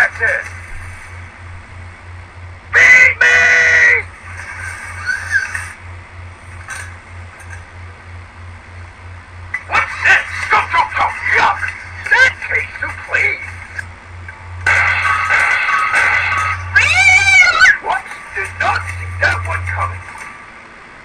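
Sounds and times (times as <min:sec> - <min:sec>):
music with pulsing beat: 0:14.7 - 0:16.8
cartoonish pitch-bending voice: 0:16.7 - 0:19.6.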